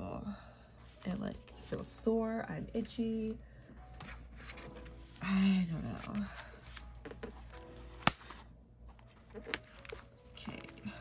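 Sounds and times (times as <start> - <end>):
plastic folder sharp click: 8.0 - 8.4.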